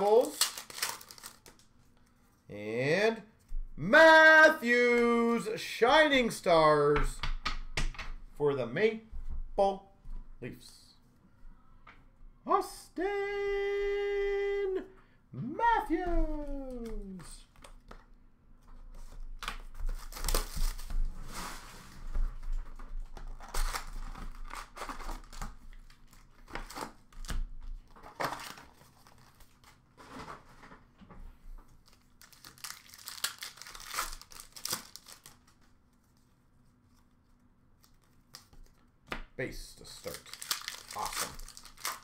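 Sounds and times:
plastic wrap and foil crinkling: 0:00.0 - 0:01.7, 0:31.7 - 0:35.7, 0:39.9 - 0:42.0.

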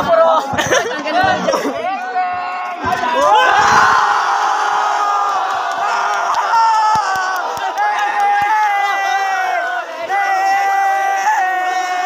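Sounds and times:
crowd cheering and yelling: 0:00.0 - 0:12.0.

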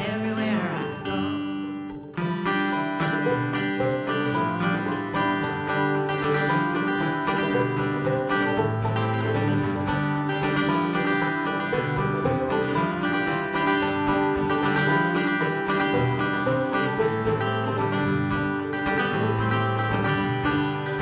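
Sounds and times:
acoustic guitars playing: 0:00.0 - 0:21.0
mandolin picking: 0:00.0 - 0:21.0.

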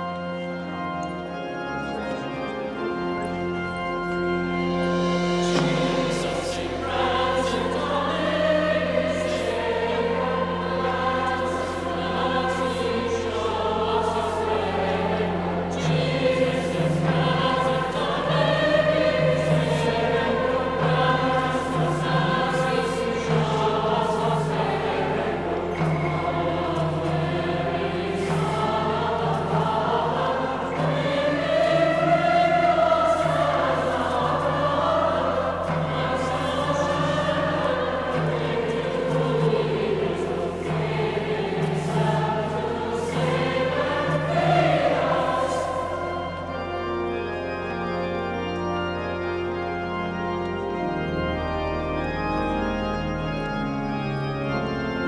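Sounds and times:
choirs singing a hymn: 0:00.0 - 0:55.0
organ accompaniment: 0:00.0 - 0:55.0.

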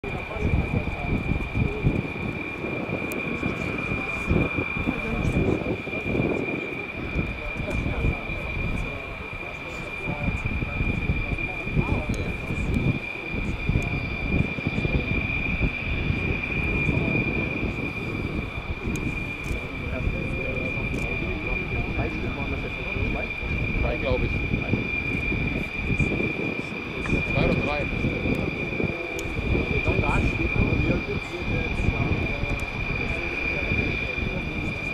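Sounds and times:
distant jet engine running: 0:00.0 - 0:34.9.

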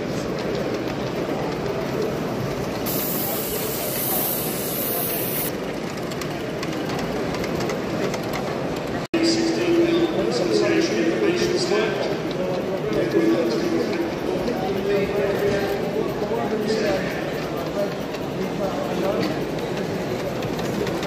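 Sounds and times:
crowd chatter: 0:00.0 - 0:21.0
steam hissing: 0:02.8 - 0:05.5.

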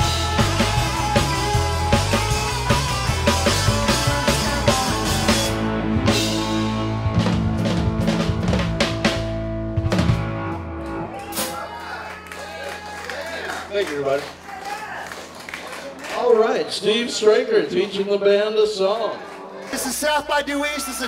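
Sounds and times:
live rock band playing: 0:00.0 - 0:15.6.

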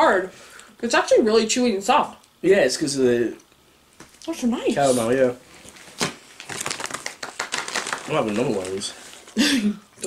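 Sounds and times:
snack packaging crinkling: 0:05.5 - 0:09.5.

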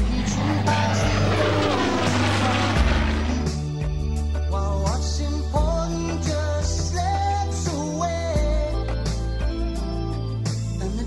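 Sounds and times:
propeller plane engine flypast: 0:00.0 - 0:03.9
background music: 0:00.0 - 0:11.0.

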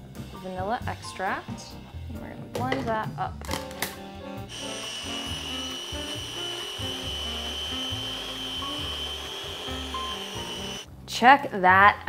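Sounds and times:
food processor whining: 0:04.5 - 0:10.9.

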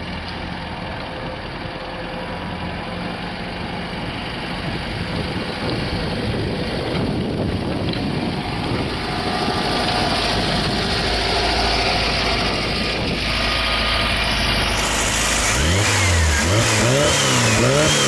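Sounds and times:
car engine idling and revving: 0:00.0 - 0:18.0.

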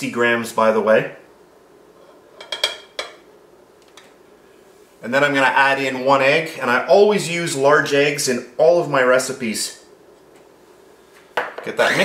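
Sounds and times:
dishes clinking: 0:02.0 - 0:03.2.

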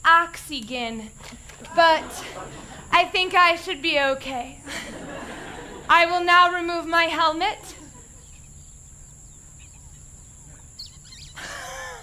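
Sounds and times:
faint short squeaks: 0:09.6 - 0:11.4.

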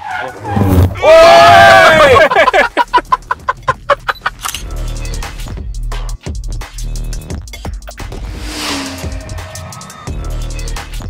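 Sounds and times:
people laughing hard: 0:01.3 - 0:04.5
background music with beat: 0:02.4 - 0:11.0.

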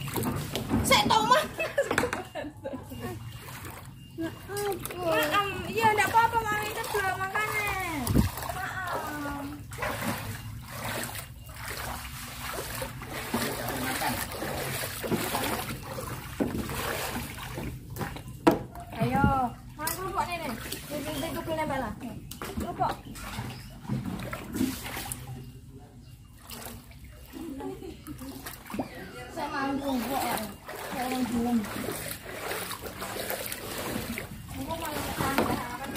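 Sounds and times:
water splashing around a kayak: 0:00.0 - 0:01.8, 0:03.0 - 0:21.8, 0:22.4 - 0:25.5, 0:26.3 - 0:35.9.

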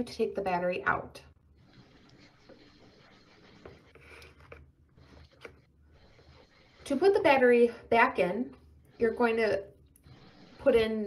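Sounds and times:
plastic battery clicks and scrapes: 0:01.6 - 0:07.0.

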